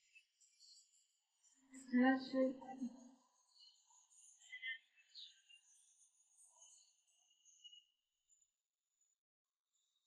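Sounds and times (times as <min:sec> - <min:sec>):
faint high-pitched chirping: 0:00.0 - 0:10.0.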